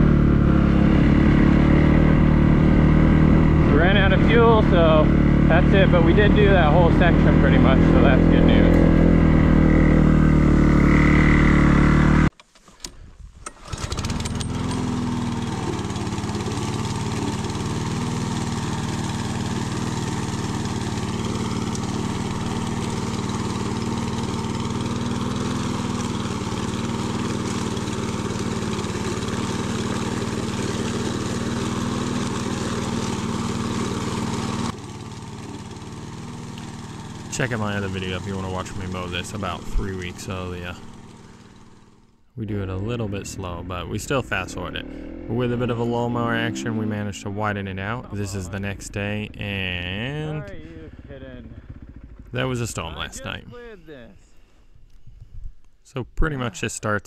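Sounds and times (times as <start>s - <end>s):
dirt bike engine revving: 0.0s - 12.3s, 13.5s - 53.4s
lawn mower cutting grass: 0.0s - 12.8s, 13.4s - 47.0s, 48.1s - 50.6s, 51.6s - 53.4s.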